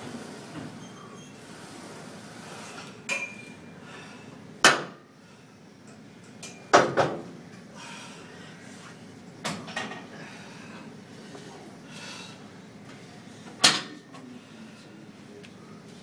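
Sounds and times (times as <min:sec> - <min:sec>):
metallic ring: 0:03.1 - 0:03.6.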